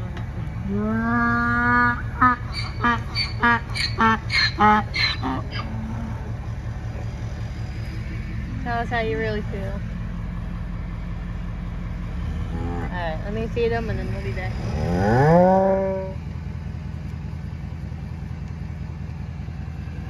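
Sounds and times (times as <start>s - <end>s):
vehicle engine idling: 0.0s - 20.0s
donkey braying: 0.6s - 6.4s.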